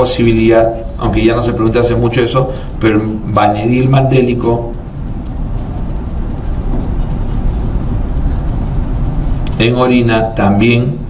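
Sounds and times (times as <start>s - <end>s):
low rumble with faint hiss: 0.0s - 11.0s.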